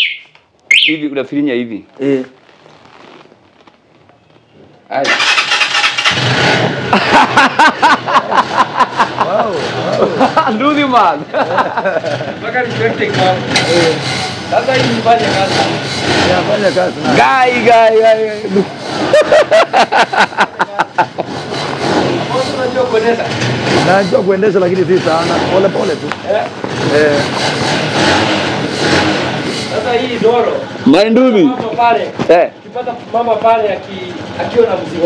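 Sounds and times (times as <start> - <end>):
person laughing hard: 6.9 - 10.6, 11.4 - 12.4, 18.6 - 21.3
motorcycle engine running: 21.1 - 35.0.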